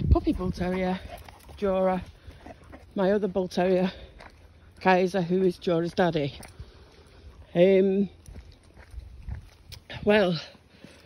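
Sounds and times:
dogs breathing noisily: 0.4s - 4.8s, 6.2s - 7.6s, 10.4s - 11.0s.

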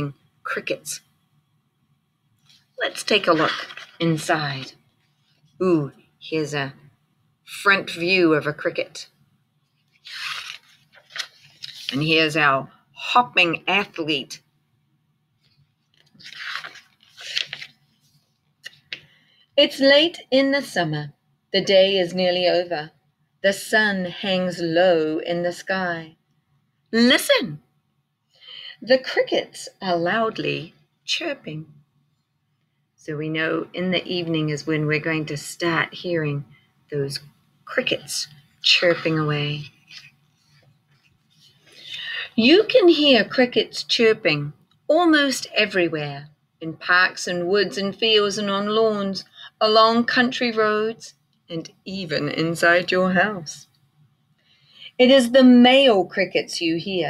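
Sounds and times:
woman speaking: 0.0s - 1.1s, 2.8s - 4.8s, 5.6s - 6.9s, 7.5s - 9.2s, 11.7s - 14.4s, 19.6s - 26.2s, 27.0s - 27.6s, 28.5s - 31.7s, 33.0s - 40.1s, 41.8s - 53.7s, 54.8s - 57.0s
book pages rustling: 2.4s - 5.5s, 9.8s - 12.2s, 15.4s - 19.1s, 38.3s - 41.8s.

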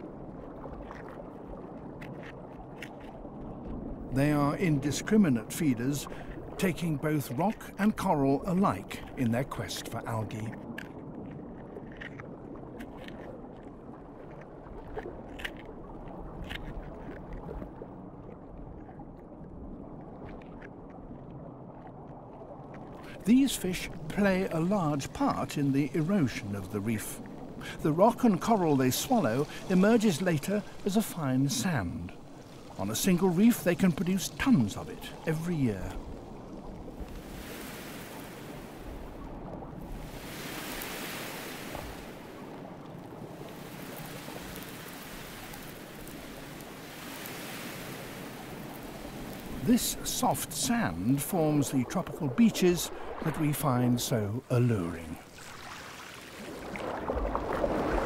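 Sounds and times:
low underwater rumble: 0.0s - 4.2s
fish biting coral clicks: 15.0s - 15.7s, 16.3s - 17.2s
underwater rushing whoosh: 22.9s - 54.1s, 55.2s - 58.0s.

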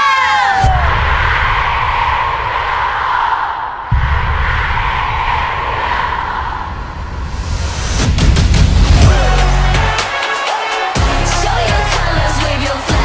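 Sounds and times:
shout falling in pitch: 0.0s - 1.2s
people cheering: 0.0s - 6.7s, 8.9s - 13.0s.

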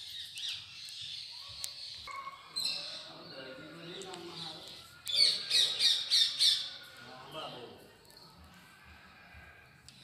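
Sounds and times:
bird squawking harsh high calls: 5.1s - 7.0s.

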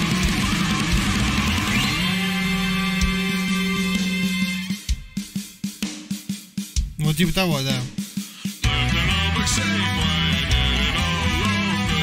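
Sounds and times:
drum kit playing: 0.0s - 12.0s.

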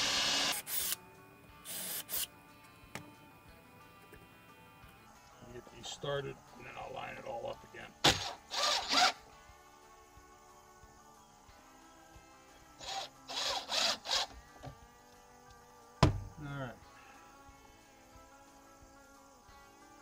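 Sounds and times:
cordless drill driving screws: 0.0s - 1.0s, 1.7s - 2.3s, 8.0s - 9.2s, 12.8s - 14.4s.

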